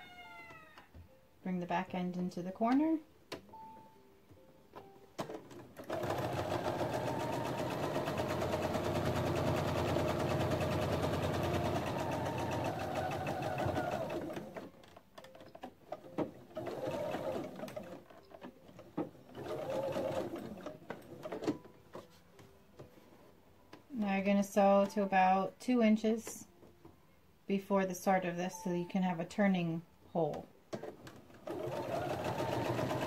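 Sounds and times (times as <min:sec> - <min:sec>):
sewing machine stitching: 0:05.2 - 0:14.7, 0:15.9 - 0:21.6, 0:30.7 - 0:33.0.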